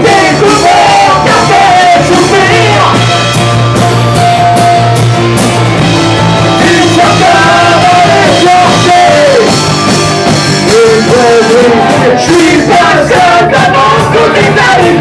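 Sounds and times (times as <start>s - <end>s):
person singing into microphone: 0.0s - 3.0s, 6.6s - 9.6s, 10.6s - 15.0s
live rock band playing: 0.0s - 15.0s.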